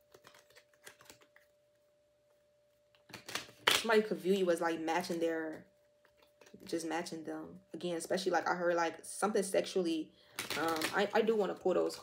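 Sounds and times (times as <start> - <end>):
cards being shuffled: 0.0 - 1.5.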